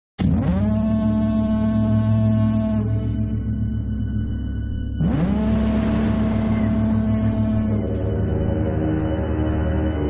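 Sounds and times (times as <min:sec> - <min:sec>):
foghorn blast: 0:00.2 - 0:03.6, 0:05.0 - 0:10.0
low pulsing rumble: 0:00.2 - 0:10.0.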